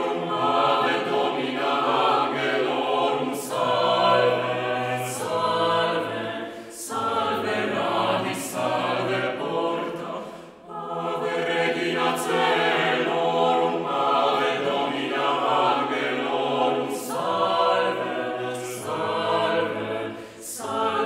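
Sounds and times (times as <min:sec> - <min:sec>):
choir singing unaccompanied: 0:00.0 - 0:21.0.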